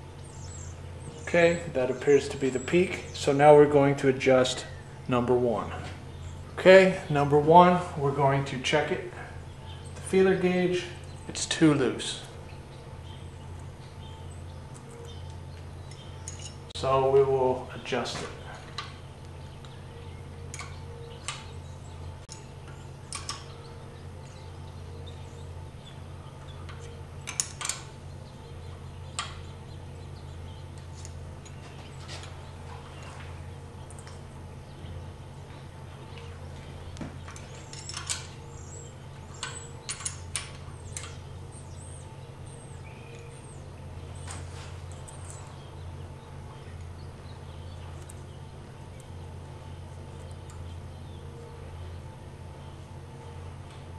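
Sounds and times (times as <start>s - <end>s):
low hum: 0.0s - 53.9s
wrenches clicking on metal: 37.4s - 38.4s.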